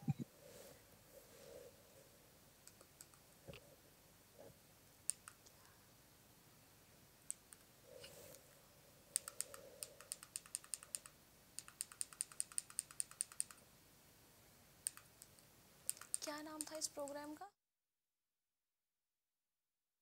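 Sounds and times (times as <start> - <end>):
faint sharp clicks: 2.6 - 3.6, 5.1 - 5.7, 9.1 - 13.6, 14.8 - 17.3.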